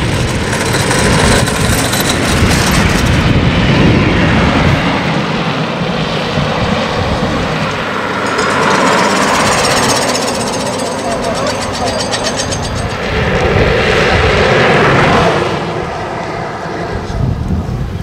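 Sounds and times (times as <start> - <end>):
carts rattling on asphalt: 0.0 - 3.2, 7.8 - 13.4
motorcycle passing: 6.4 - 16.8.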